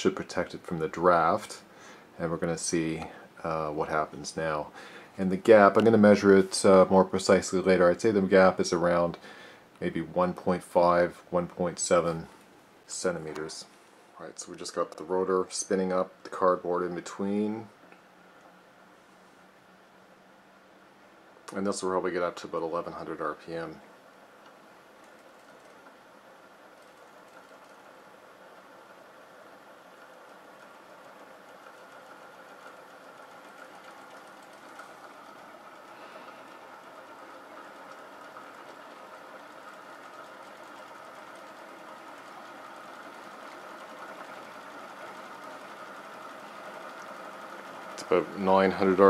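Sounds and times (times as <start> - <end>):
rotor disc whirring: 0.0 - 49.0.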